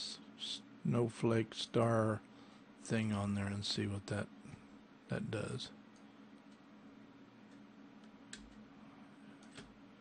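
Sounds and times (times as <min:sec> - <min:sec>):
faint steady hum: 0:00.0 - 0:10.0
computer mouse clicks: 0:07.5 - 0:08.6, 0:09.4 - 0:09.8.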